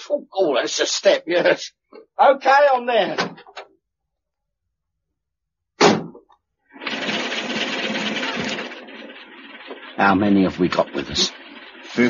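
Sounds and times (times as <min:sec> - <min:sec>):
lorry engine running: 0:06.8 - 0:12.0.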